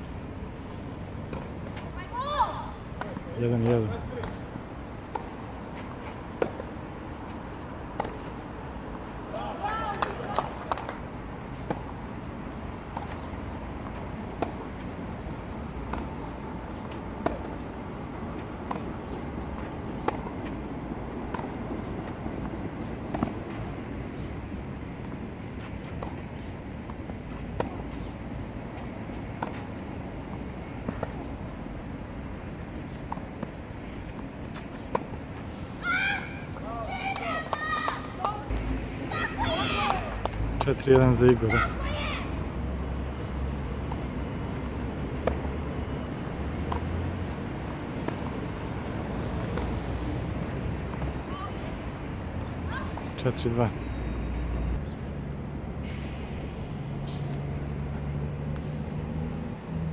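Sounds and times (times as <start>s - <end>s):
outdoor background noise: 0.0s - 59.9s
voices: 1.8s - 4.6s, 9.2s - 11.0s, 35.8s - 42.5s, 51.1s - 51.8s
rackets striking tennis ball: 2.7s - 6.8s, 7.9s - 8.4s, 9.8s - 14.9s, 15.8s - 31.3s, 36.5s - 38.6s.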